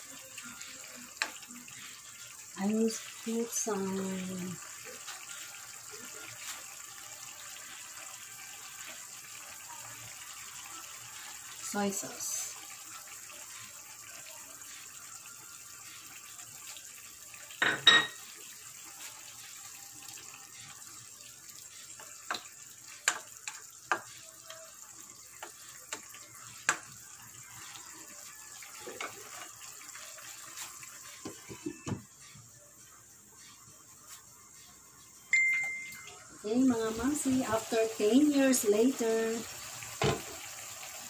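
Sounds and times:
sauce bubbling in a wok: 0:00.0 - 0:17.6, 0:18.2 - 0:32.2.

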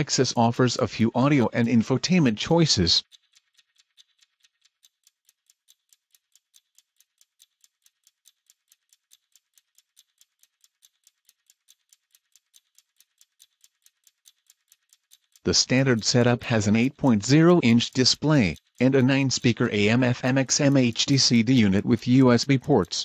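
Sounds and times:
shaker ticking in music: 0:00.0 - 0:23.0.

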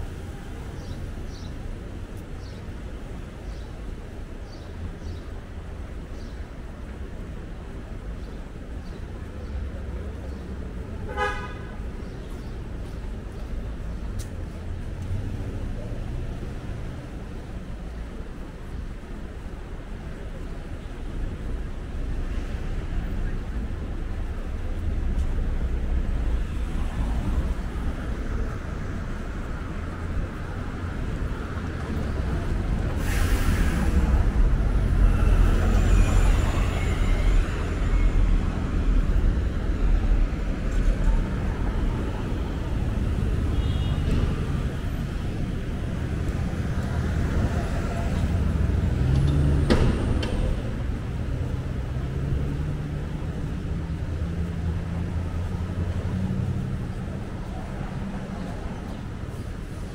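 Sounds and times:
traffic rumble: 0:00.0 - 0:59.9
loud hiss: 0:32.8 - 0:36.8.

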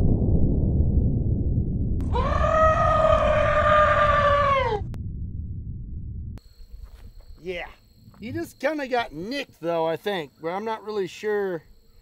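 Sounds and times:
deep rumble: 0:00.0 - 0:07.2
high-pitched scream: 0:02.0 - 0:05.0
insects buzzing: 0:06.4 - 0:12.0.

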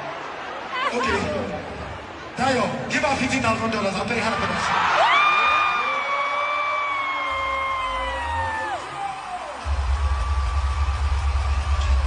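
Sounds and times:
person whooping: 0:05.0 - 0:09.5
deep bass music: 0:09.6 - 0:12.0.

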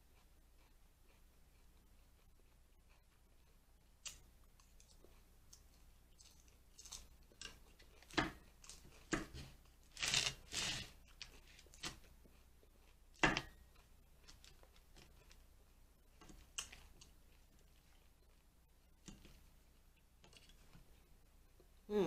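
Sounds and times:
crunchy chewing: 0:00.0 - 0:21.7
fork scraping plastic bowl: 0:07.4 - 0:12.1.

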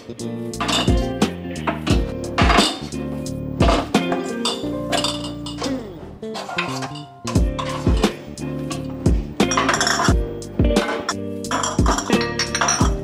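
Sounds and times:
background music with beat: 0:00.0 - 0:13.0
glass jars clinking: 0:00.6 - 0:01.1, 0:03.7 - 0:05.7, 0:06.4 - 0:07.9, 0:09.5 - 0:10.2, 0:10.8 - 0:13.0.

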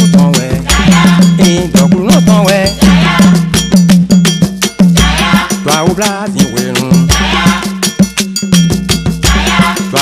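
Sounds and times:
bell-like struck percussion: 0:00.0 - 0:10.0
faint choir singing: 0:00.6 - 0:01.5, 0:02.8 - 0:03.6, 0:05.0 - 0:05.8, 0:07.1 - 0:07.9, 0:09.2 - 0:10.0.

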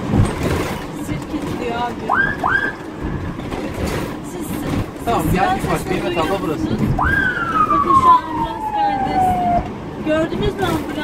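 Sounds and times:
vehicle rumble on road: 0:00.0 - 0:11.0
siren whoops: 0:02.1 - 0:02.8, 0:07.0 - 0:09.7.

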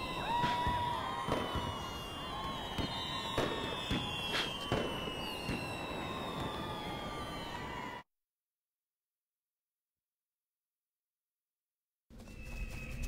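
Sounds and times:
firework cracks and pops: 0:00.0 - 0:07.5
falling firework whistles: 0:00.0 - 0:08.0.

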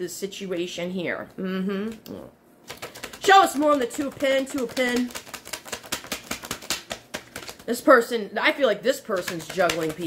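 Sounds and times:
cards being shuffled: 0:02.6 - 0:07.8, 0:09.1 - 0:10.0.

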